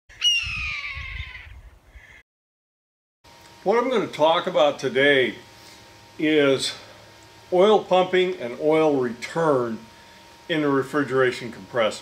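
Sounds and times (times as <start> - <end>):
hawk screaming: 0.1 - 2.2.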